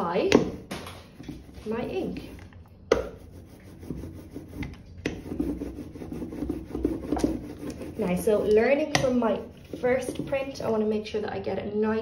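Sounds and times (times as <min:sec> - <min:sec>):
rubber roller rubbing on block: 0:03.1 - 0:10.6.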